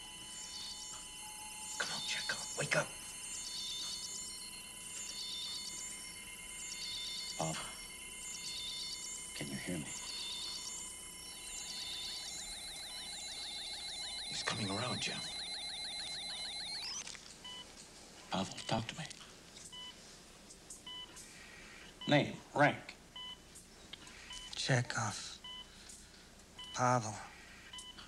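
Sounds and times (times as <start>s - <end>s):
faint electronic hum: 0.0s - 28.0s
high pulsing electronic warble: 0.2s - 17.0s.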